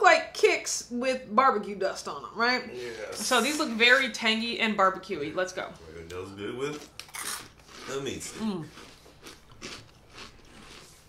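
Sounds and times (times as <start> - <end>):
crunchy snack chewing: 6.7 - 11.0.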